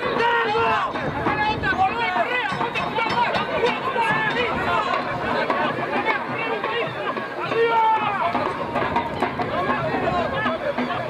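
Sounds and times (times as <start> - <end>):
voices shouting and calling: 0.0 - 11.0
loud drawn-out call: 1.7 - 11.0.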